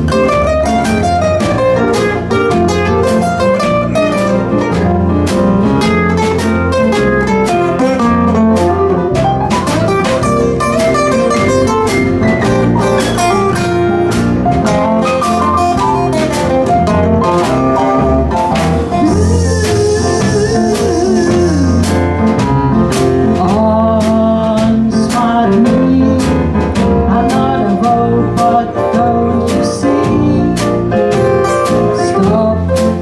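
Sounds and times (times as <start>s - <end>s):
acoustic guitars playing blues: 0.0s - 33.0s.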